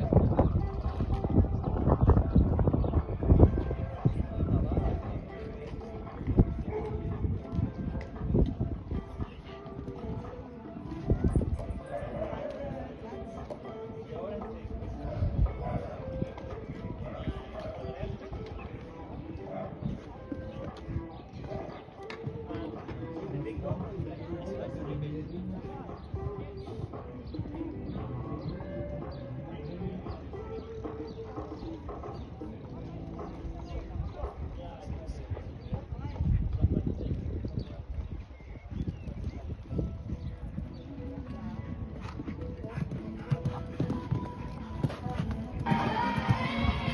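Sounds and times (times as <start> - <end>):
horse hoofbeats on sand: 0.0 - 46.9
indistinct voices: 43.1 - 46.9.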